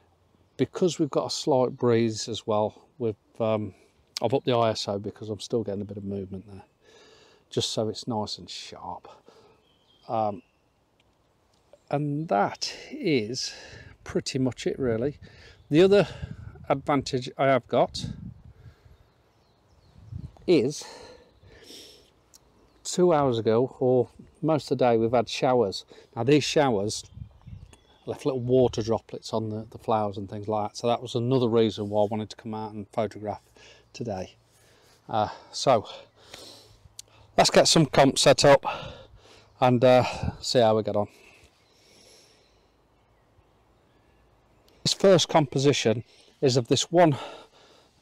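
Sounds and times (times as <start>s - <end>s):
faint bird calls: 18.1s - 22.9s, 41.0s - 44.9s.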